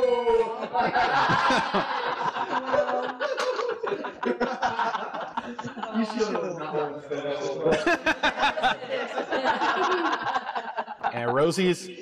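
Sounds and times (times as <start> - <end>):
people laughing: 0.0 - 12.0.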